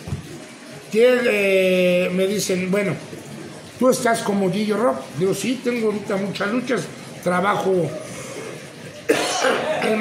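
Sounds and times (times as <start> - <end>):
man coughing: 9.1 - 10.0.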